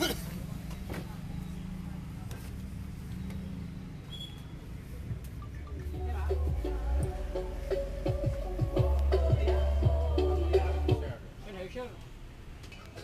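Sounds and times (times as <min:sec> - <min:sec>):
heavy deep bass line: 0:05.1 - 0:11.2
music over loudspeakers: 0:05.1 - 0:11.2.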